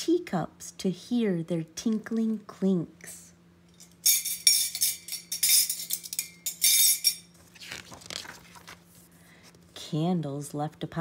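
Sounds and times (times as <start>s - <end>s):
spoons clinking against teacups: 3.8s - 7.3s
book page turning: 7.4s - 9.7s.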